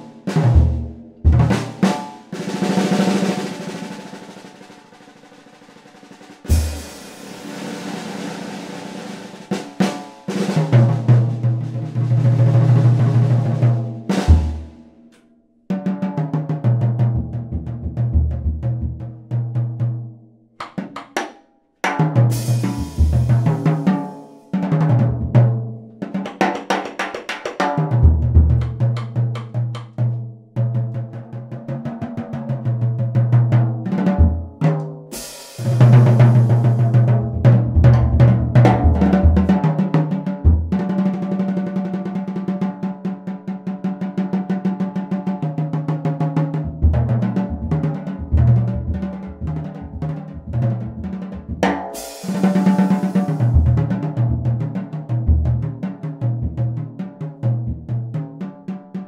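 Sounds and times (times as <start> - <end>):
drum kit played with sticks: 0.0 - 20.0, 20.6 - 59.0
cymbal crash: 35.2 - 36.8, 52.0 - 53.6.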